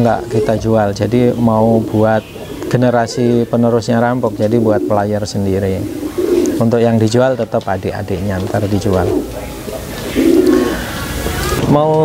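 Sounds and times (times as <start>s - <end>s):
pigeon cooing: 0.0s - 6.7s, 8.4s - 11.6s.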